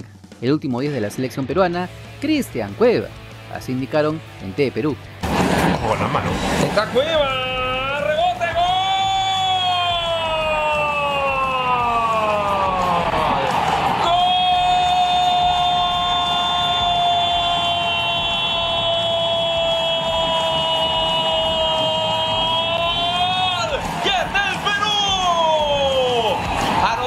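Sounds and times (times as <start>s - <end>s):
commentator shouting goal: 6.9s - 17.6s, 19.1s - 27.0s.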